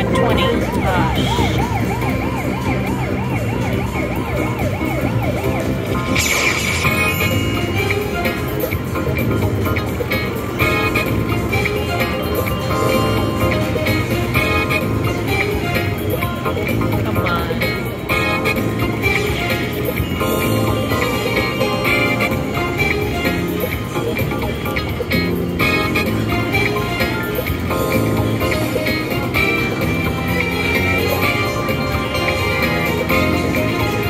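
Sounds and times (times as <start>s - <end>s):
slot machine music: 0.0s - 34.0s
chiming jingles: 6.2s - 8.8s.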